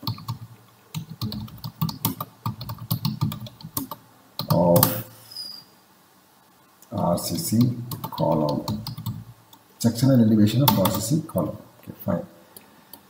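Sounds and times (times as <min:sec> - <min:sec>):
typing on a computer keyboard: 0:00.0 - 0:05.0, 0:07.6 - 0:09.2, 0:10.6 - 0:11.1.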